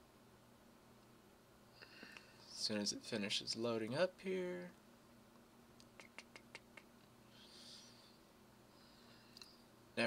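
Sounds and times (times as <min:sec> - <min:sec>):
faint soft hiss: 0:00.0 - 0:10.0
faint steady hum: 0:00.0 - 0:10.0.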